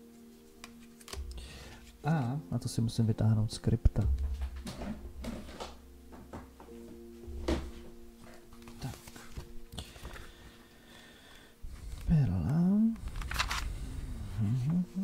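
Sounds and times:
faint background music: 0.0s - 15.0s
booklet handling knocks and clicks: 0.6s - 1.4s.

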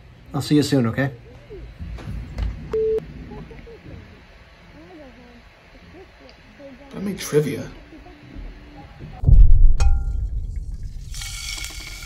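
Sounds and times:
low rumbling: 1.6s - 5.5s, 9.1s - 11.6s.

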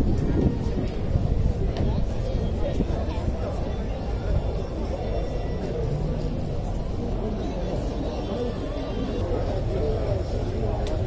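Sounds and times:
faint voices of people: 0.0s - 11.0s.

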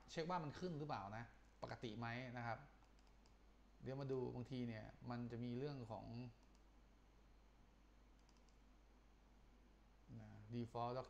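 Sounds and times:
computer mouse clicks: 2.8s - 3.4s, 6.4s - 6.7s, 8.2s - 8.7s.

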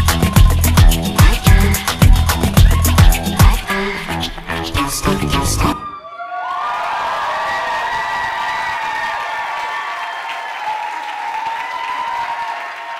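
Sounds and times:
cheering whoops: 5.6s - 12.9s
audience applauding: 6.3s - 12.9s.

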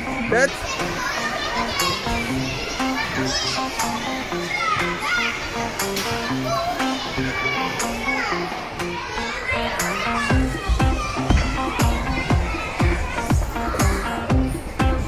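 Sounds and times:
children shouting and chattering: 0.0s - 15.0s.

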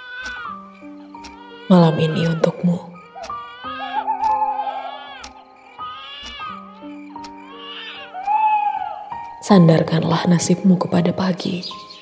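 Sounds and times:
slow soft background music: 0.0s - 12.0s.

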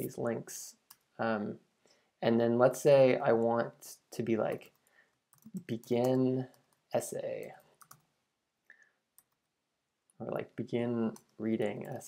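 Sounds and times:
faint keyboard clicks: 7.4s - 8.1s, 11.1s - 12.0s.

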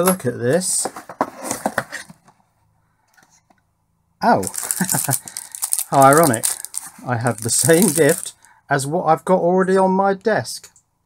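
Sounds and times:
cardboard box scraping and tapping: 0.8s - 2.3s.

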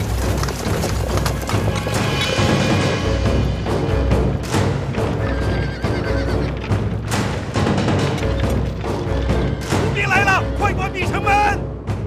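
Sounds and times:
horse hoofbeats: 0.0s - 10.8s
dramatic film score with drums: 0.0s - 12.0s
horses whinnying: 5.0s - 6.9s.

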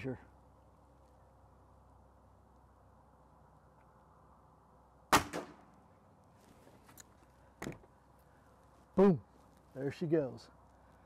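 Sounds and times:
air rifle shot: 5.1s - 5.7s.

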